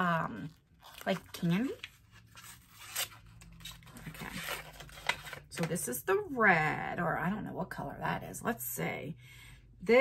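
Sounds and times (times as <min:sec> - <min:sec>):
plastic sachet crinkling and ripping: 0:00.4 - 0:05.6.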